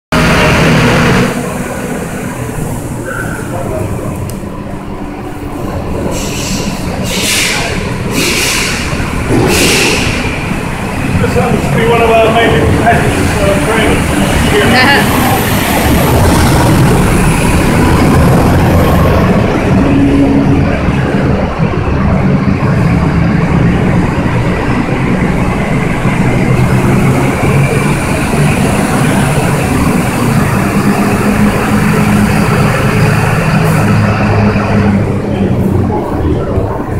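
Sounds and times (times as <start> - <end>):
truck engines rumbling: 0.1 - 36.9.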